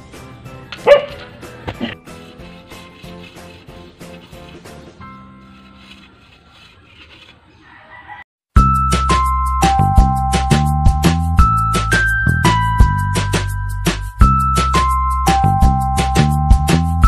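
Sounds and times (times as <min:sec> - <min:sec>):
dog barking: 0:00.8 - 0:01.3.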